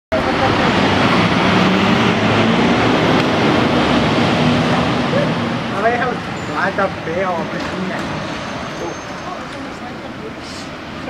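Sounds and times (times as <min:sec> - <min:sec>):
diesel engine running: 0:00.1 - 0:11.0.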